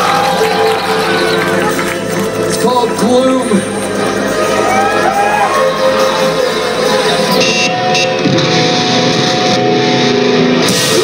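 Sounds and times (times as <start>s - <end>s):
live band electric guitars ringing: 0.0s - 11.0s.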